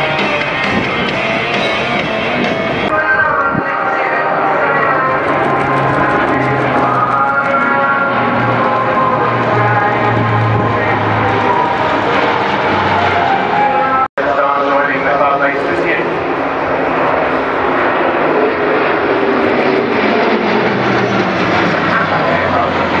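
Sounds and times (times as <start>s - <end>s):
turboprop aircraft flying past: 3.6s - 23.0s.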